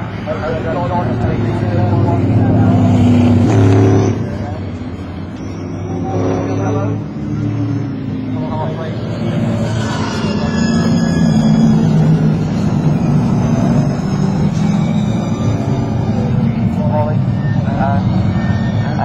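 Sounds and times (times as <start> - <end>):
racing car engines passing: 0.0 - 19.0.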